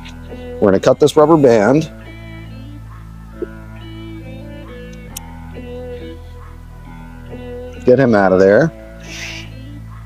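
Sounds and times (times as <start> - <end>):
guitar with low bass music: 0.0 - 10.0.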